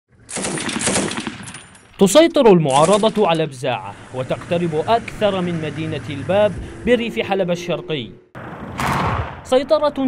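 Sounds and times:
machine gun automatic fire: 0:00.2 - 0:01.9.

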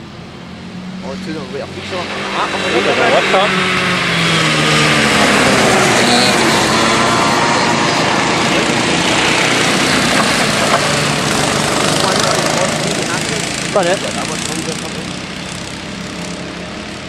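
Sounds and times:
karts passing at high revs: 0:00.0 - 0:17.0.

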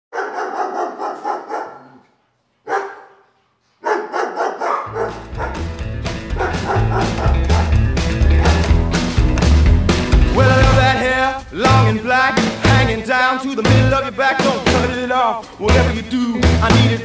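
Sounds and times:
dog barking: 0:00.1 - 0:02.0, 0:02.6 - 0:05.7, 0:06.3 - 0:07.8, 0:08.4 - 0:08.7
rock and roll song: 0:04.9 - 0:17.0.

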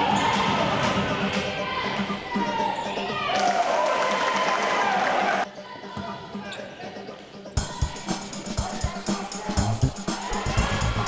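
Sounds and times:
loud shouting voices: 0:00.0 - 0:06.3, 0:07.6 - 0:11.0.

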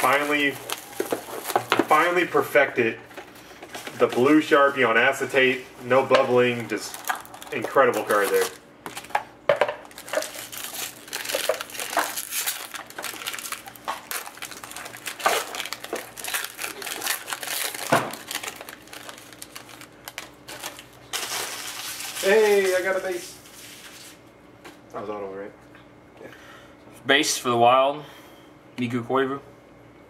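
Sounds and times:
foil wrapper tearing and crinkling: 0:00.0 - 0:02.8, 0:06.0 - 0:09.2, 0:09.8 - 0:24.2.

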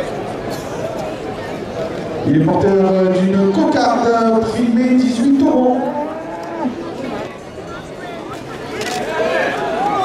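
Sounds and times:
murmur of crowd chatter: 0:00.0 - 0:10.0.

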